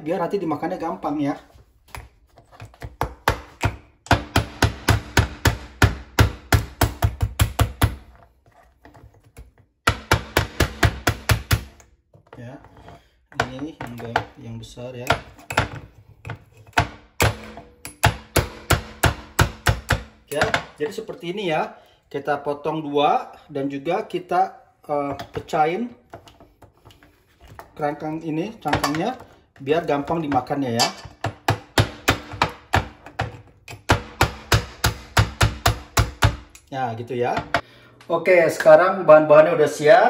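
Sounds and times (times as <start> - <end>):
mallet cracking crab shells: 2.8 - 8.2, 16.7 - 20.8, 30.1 - 36.7.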